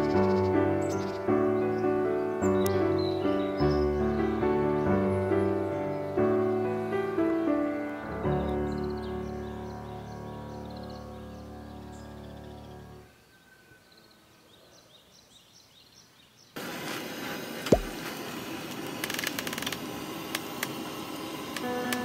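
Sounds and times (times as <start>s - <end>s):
faint bird chirps: 0.0s - 6.4s, 7.9s - 16.6s
soft piano music: 0.0s - 13.1s, 21.6s - 22.0s
gas stove hissing: 16.6s - 22.0s.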